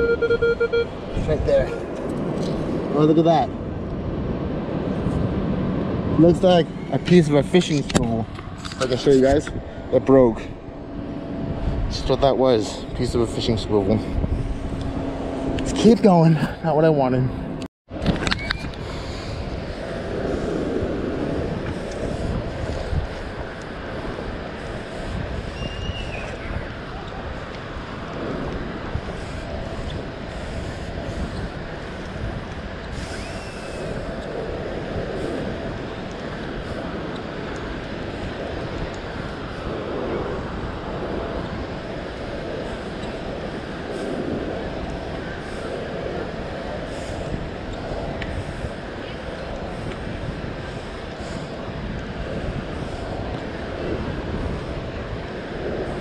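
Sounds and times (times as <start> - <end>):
beach background noise: 0.0 - 56.0
wind noise on microphone: 0.0 - 56.0.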